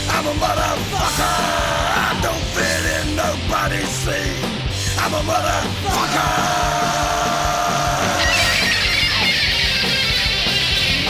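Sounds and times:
punk rock song: 0:00.0 - 0:11.0.

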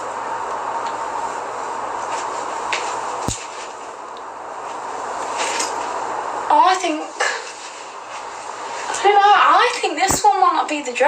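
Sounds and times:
fabric rustling: 0:04.6 - 0:06.0, 0:07.0 - 0:09.0.

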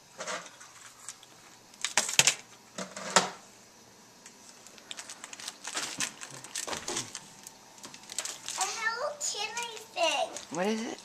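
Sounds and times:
packaging crinkling and clicking: 0:04.5 - 0:08.7, 0:09.6 - 0:10.6.

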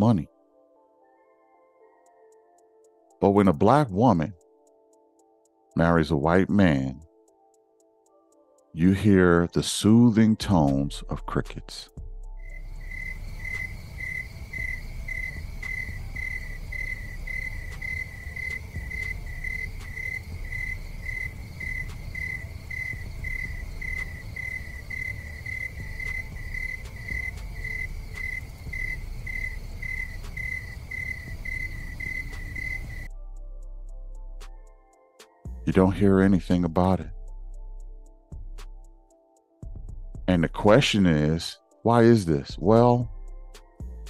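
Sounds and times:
crickets chirping: 0:12.4 - 0:33.1.

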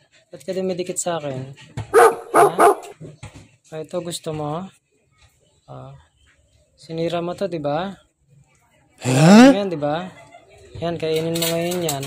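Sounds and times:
dog barking: 0:01.9 - 0:03.0.

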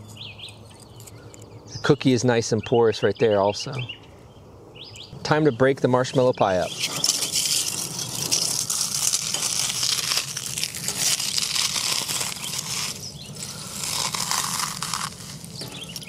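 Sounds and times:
charred food crushed by hand: 0:06.7 - 0:16.0.

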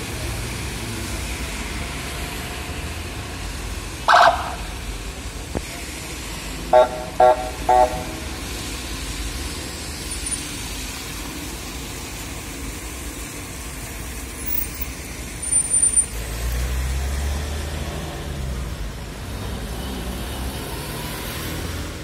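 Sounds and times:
rain falling on wet street: 0:00.0 - 0:22.0
vehicle driving on wet road: 0:00.0 - 0:22.0.

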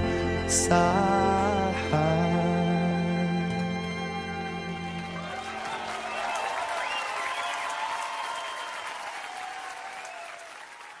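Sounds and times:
audience applauding and cheering: 0:03.6 - 0:11.0.

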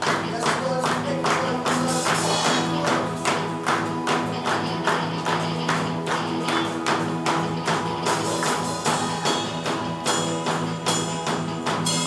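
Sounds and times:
live band playing upbeat song: 0:00.0 - 0:12.0.

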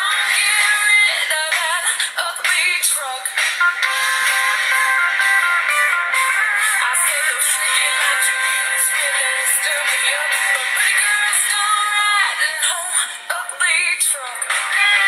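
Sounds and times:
recorded song with singer: 0:00.0 - 0:15.0.

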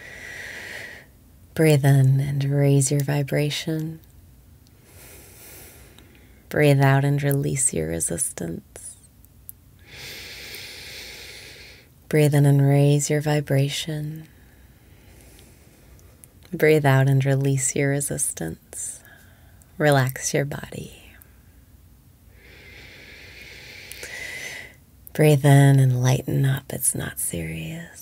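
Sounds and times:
woman breathing slowly: 0:00.0 - 0:01.2, 0:04.7 - 0:06.5, 0:09.8 - 0:11.9, 0:14.2 - 0:16.3, 0:22.3 - 0:24.8.

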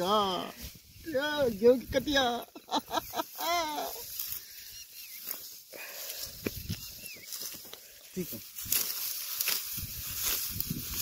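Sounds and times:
wheat stalks rustling and snapping: 0:03.9 - 0:11.0.

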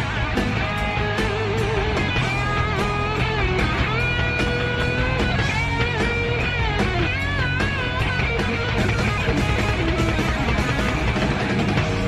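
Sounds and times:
bass: 0:00.0 - 0:12.0
drums: 0:00.0 - 0:12.0
electric guitars: 0:00.0 - 0:12.0.

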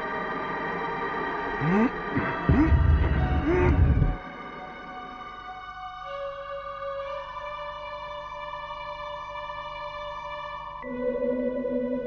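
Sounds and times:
low throbbing rumble: 0:02.2 - 0:04.2.

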